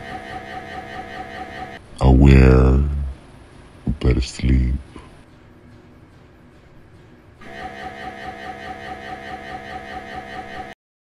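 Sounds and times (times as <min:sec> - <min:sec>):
mri scanner pulsing drone: 0:00.0 - 0:10.8.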